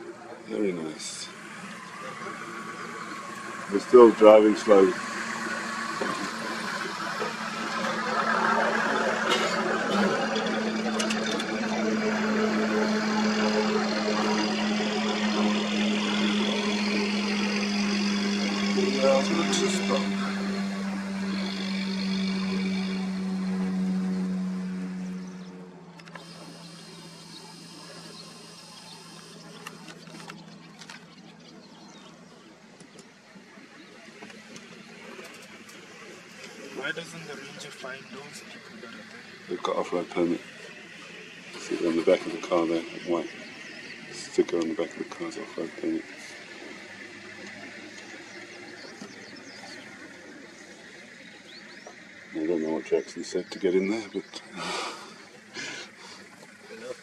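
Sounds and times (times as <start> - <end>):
vehicle engine running: 0.0 - 57.0.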